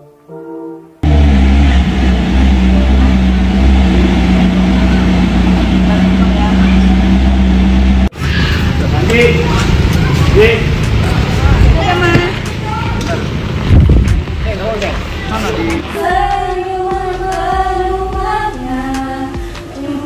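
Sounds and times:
sports car engine idling: 1.0s - 16.0s
voices talking: 1.0s - 17.4s.

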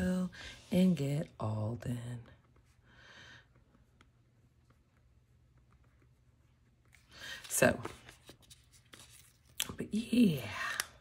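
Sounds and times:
paper rustling: 6.8s - 9.6s.

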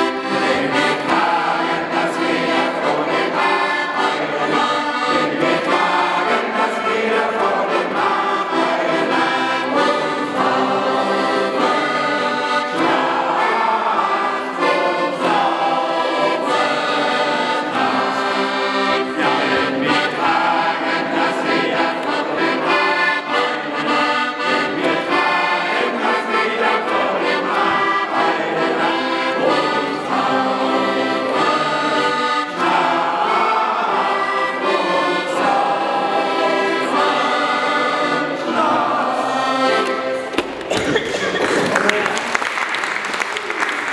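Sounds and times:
men's choir singing: 0.0s - 41.4s
accordion: 0.0s - 43.9s.

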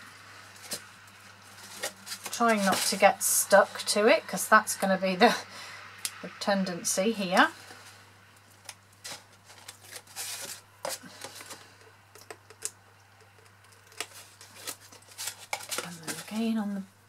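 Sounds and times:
tape backing peeling rustle: 0.5s - 3.8s, 8.6s - 12.7s, 13.4s - 16.6s.

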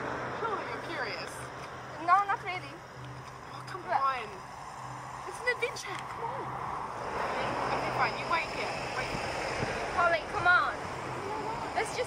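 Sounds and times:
car passing: 0.0s - 12.0s
people's voices: 9.8s - 12.0s.

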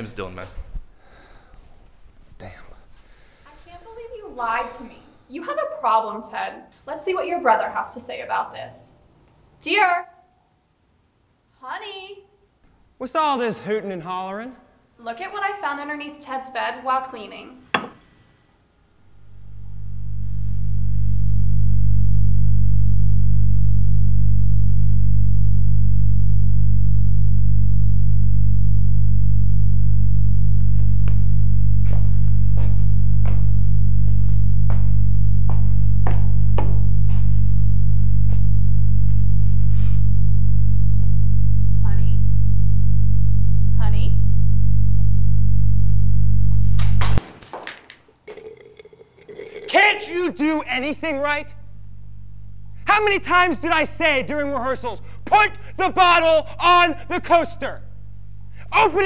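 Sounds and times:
low bass drone: 19.0s - 47.2s, 50.8s - 55.2s.

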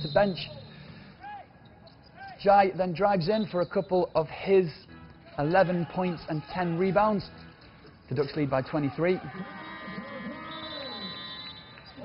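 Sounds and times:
arena background noise: 0.0s - 12.0s
voices shouting: 8.9s - 12.0s.

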